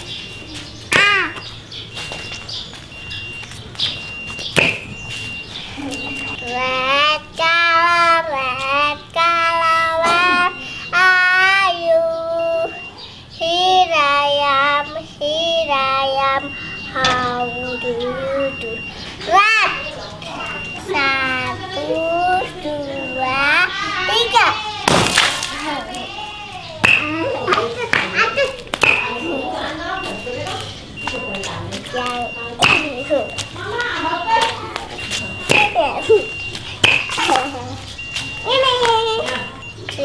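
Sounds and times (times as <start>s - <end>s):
water balloon bursting: 24.8s - 25.6s.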